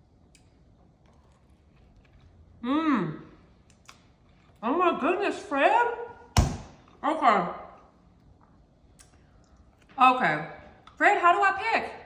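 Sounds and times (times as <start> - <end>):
mouth clicks while chewing: 8.9 - 9.7.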